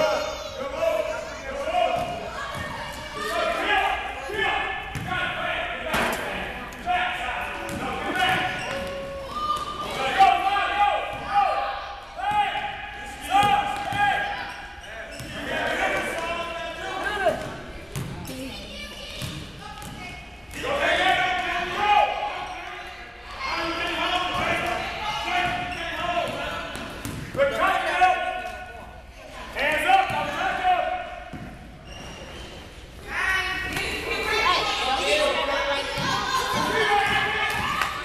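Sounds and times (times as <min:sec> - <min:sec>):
basketball bouncing on gym floor: 0:04.9 - 0:05.2, 0:07.7 - 0:08.9, 0:17.9 - 0:18.4, 0:19.2 - 0:20.1, 0:25.4 - 0:27.4.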